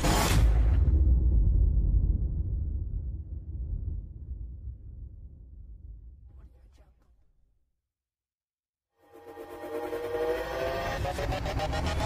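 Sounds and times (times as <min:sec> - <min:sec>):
low rumble: 0:00.5 - 0:06.3.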